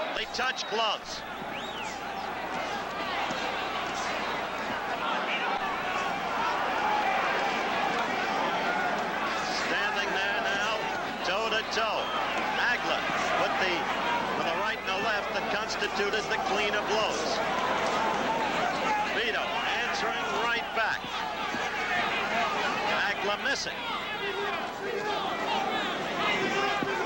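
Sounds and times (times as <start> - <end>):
crowd shouting and cheering: 0.0 - 27.0.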